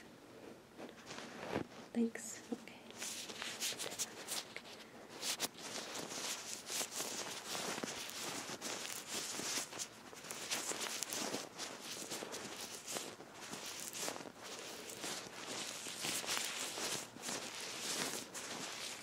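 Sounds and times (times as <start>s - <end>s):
gloved hands rubbing: 2.9s - 19.0s.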